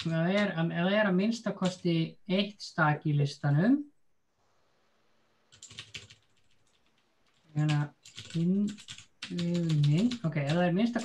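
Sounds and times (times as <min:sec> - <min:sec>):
typing on keyboard: 0:00.0 - 0:00.6, 0:01.6 - 0:01.8, 0:05.5 - 0:11.0
man speaking: 0:00.0 - 0:03.9, 0:07.6 - 0:11.0.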